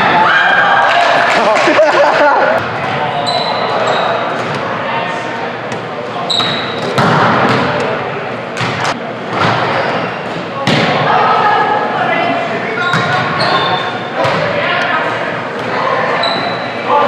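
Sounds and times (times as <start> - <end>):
sneaker squeaks on hardwood: 6.2 - 7.0, 12.8 - 14.0, 16.2 - 16.8.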